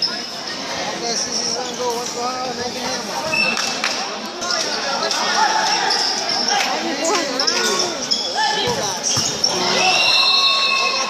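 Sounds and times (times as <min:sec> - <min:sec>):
spectators' voices: 0:00.0 - 0:11.0
ball striking court: 0:08.6 - 0:09.5.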